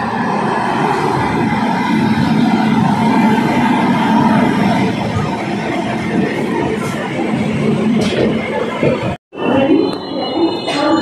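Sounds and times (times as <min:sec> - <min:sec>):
train running noise on board: 0:00.0 - 0:11.0.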